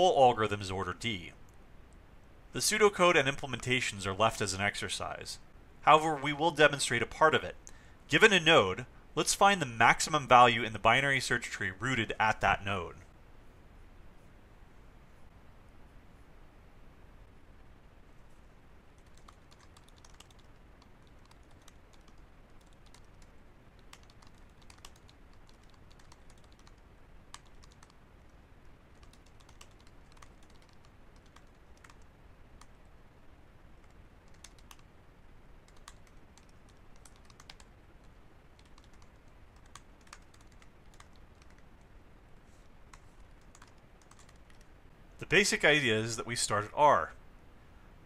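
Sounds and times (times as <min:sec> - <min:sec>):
typing on keyboard: 0:19.0 - 0:28.0, 0:28.9 - 0:32.7, 0:33.8 - 0:34.8, 0:35.7 - 0:37.7, 0:38.6 - 0:41.7, 0:42.9 - 0:44.7.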